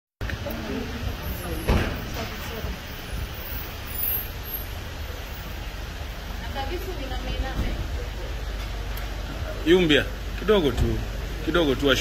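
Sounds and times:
car rolling to a stop: 0.3s - 9.6s.

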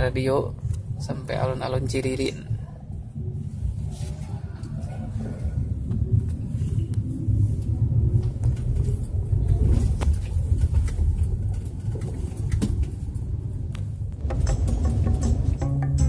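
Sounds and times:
car engine rumble: 0.0s - 16.0s
road noise: 0.0s - 16.0s
music: 14.2s - 16.0s.

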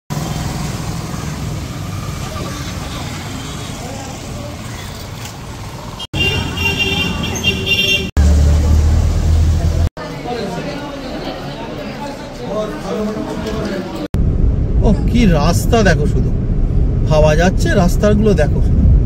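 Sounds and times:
loud low engine rumble: 0.1s - 9.9s
traffic rumble: 0.1s - 19.0s
horns honking: 6.0s - 8.5s.

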